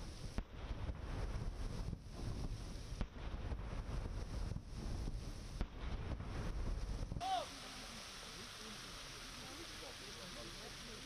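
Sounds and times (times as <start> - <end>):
wind buffeting microphone: 0.0 - 7.2
steady hiss: 0.0 - 11.0.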